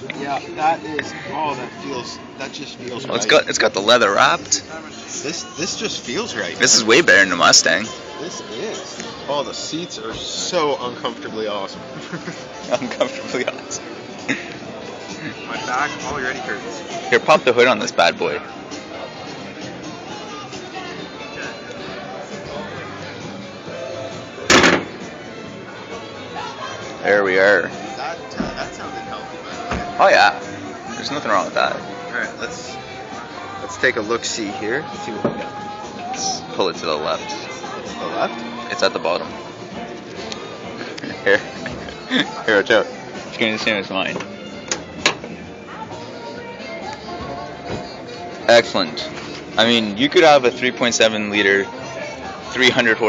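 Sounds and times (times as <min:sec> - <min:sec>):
background music: 0:00.0 - 0:53.0
car hood latch releasing: 0:24.5 - 0:25.0.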